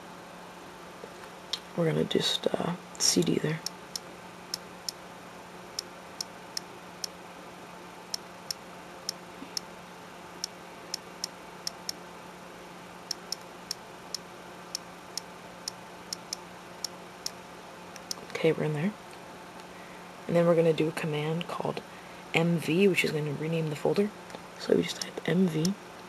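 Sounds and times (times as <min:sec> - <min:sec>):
faint steady hum: 0:00.0 - 0:26.0.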